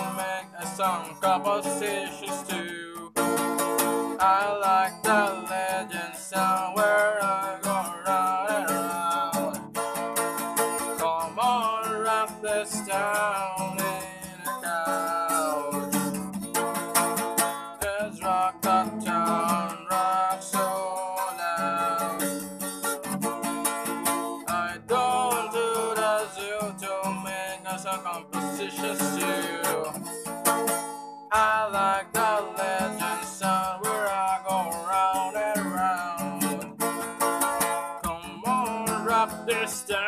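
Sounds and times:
person singing: 0.0s - 9.6s, 10.8s - 16.2s, 17.8s - 22.4s, 24.4s - 30.2s, 31.3s - 36.9s, 38.0s - 40.0s
acoustic guitar strumming: 0.0s - 40.0s.

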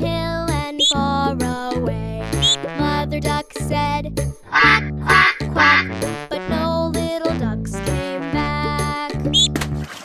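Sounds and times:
children's song music: 0.0s - 9.7s
duck quacks: 2.4s - 2.6s, 4.5s - 6.2s.

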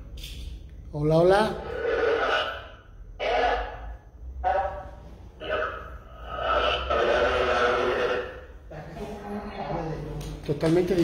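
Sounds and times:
distorted person's voice: 1.0s - 10.1s.

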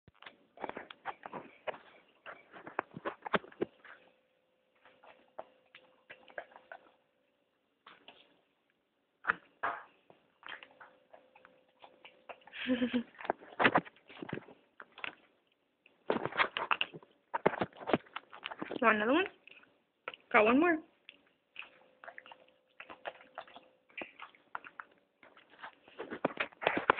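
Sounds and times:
small dog eating: 4.8s - 7.1s, 10.4s - 20.3s, 21.0s - 26.9s.

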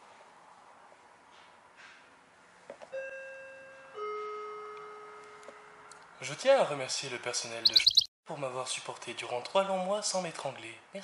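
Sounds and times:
two-note ding-dong chime: 3.0s - 5.3s.

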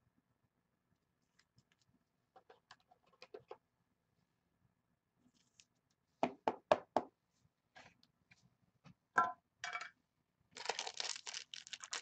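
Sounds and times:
foil wrapper crinkling and tearing: 10.6s - 12.0s.

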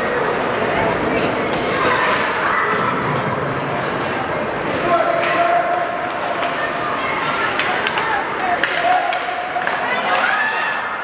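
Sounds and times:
spectators shouting: 4.7s - 11.0s
hockey sticks clacking on puck: 5.1s - 11.0s.

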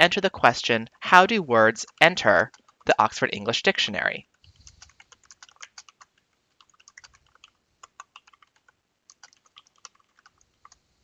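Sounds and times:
typing on computer keyboard: 1.7s - 3.0s, 4.4s - 10.8s.

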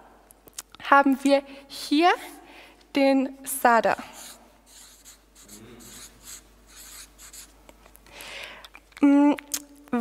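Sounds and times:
marker squeaking on paper: 4.2s - 7.5s.

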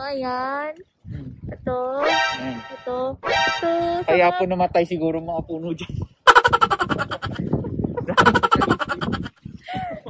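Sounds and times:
person's voice held phrase: 2.0s - 4.6s
fast-pulsing vocal sound: 6.3s - 9.3s.

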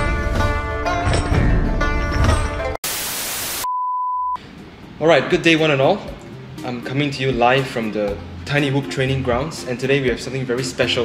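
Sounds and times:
static white noise hiss: 2.8s - 3.6s
high beep: 3.5s - 4.4s.

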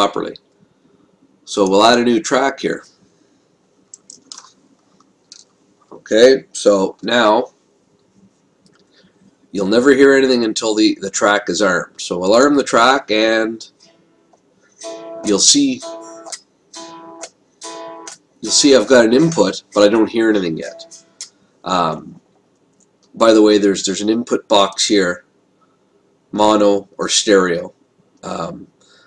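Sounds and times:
mouth clicks and smacks: 3.9s - 5.6s
short breath: 8.8s - 9.4s, 28.8s - 29.0s
unamplified electric guitar chord: 14.8s - 21.1s.

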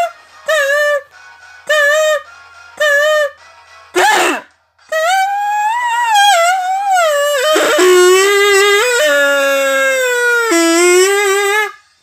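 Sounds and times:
kazoo humming a melody: 0.0s - 12.0s.

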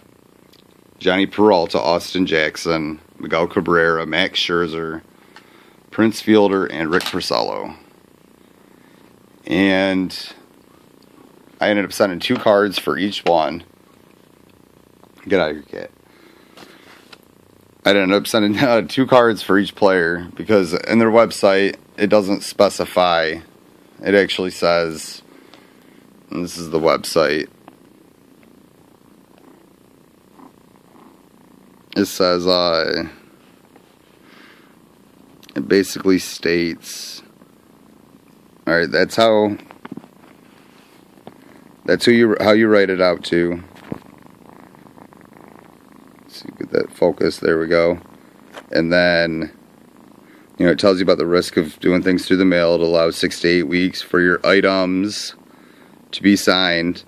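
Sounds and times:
cat purring: 0.0s - 57.0s.

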